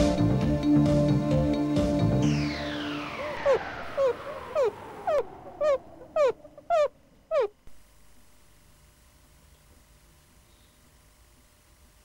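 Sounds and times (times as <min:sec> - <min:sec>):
music: 0:00.0 - 0:03.7.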